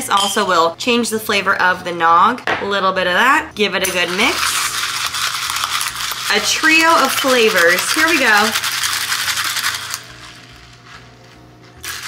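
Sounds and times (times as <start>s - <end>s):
ice rattling against a glass: 4.0s - 10.4s.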